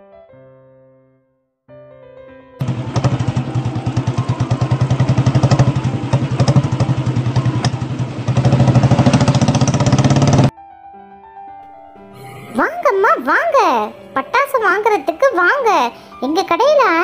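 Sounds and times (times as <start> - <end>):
motorcycle engine running: 2.6 - 10.5.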